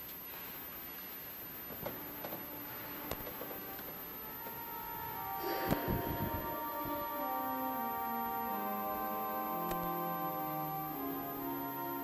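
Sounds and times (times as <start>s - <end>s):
organ music: 1.8s - 12.0s.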